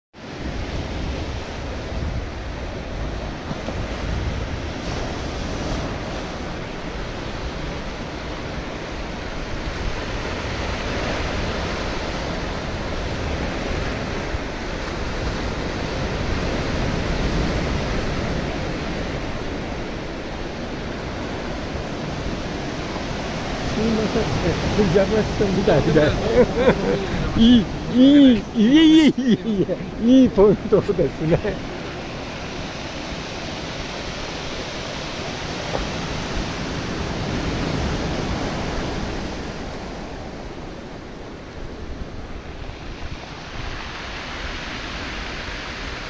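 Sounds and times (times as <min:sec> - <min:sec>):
ocean surf breaking: 0:00.2 - 0:46.0.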